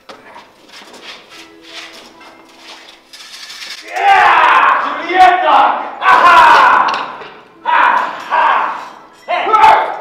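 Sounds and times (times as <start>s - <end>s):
man yelling war cries: 3.9s - 10.0s.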